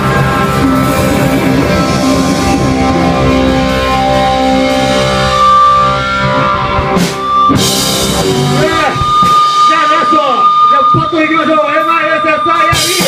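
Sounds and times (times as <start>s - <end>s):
electric guitar ringing notes: 0.0s - 13.0s
live rock band playing: 0.0s - 13.0s
drum crashes: 6.3s - 10.4s, 12.7s - 13.0s.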